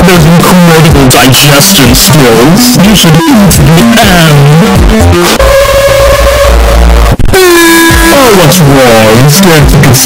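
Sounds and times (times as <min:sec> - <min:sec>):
distorted held tone over bass: 0:00.0 - 0:10.0.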